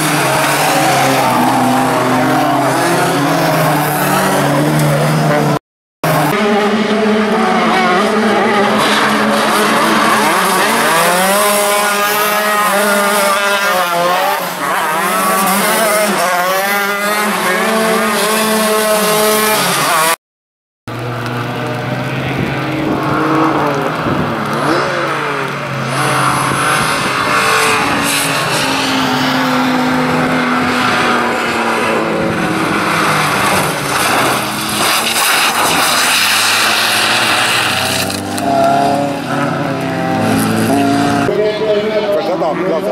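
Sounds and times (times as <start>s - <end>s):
racing car engines revving: 0.0s - 20.2s, 20.9s - 42.9s.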